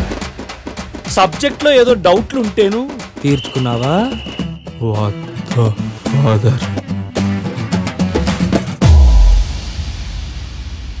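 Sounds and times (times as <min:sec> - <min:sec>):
deep boom hit: 0:08.8 - 0:11.0.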